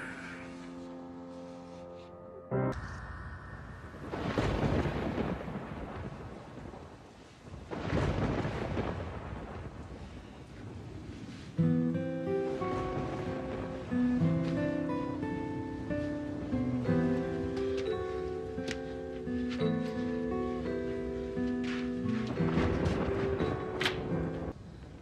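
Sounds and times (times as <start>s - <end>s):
thunder rolling: 2.7s - 18.0s, 20.4s - 24.6s
steady rain: 2.8s - 25.0s
acoustic guitar music: 11.6s - 24.5s.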